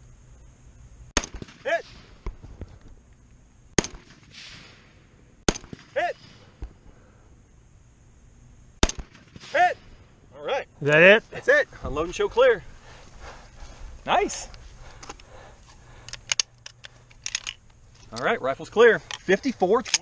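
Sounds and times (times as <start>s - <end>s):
rifle shots: 1.2s - 2.4s, 3.8s - 6.7s, 8.8s - 10.0s.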